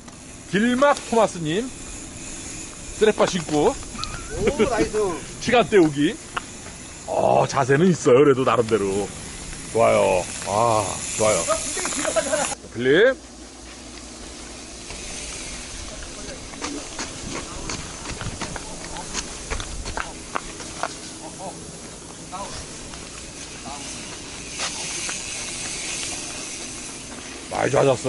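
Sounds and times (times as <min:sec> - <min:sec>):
bike tyres hissing on dirt: 0:00.0 - 0:28.0
gravel and bike rattles: 0:00.0 - 0:28.0.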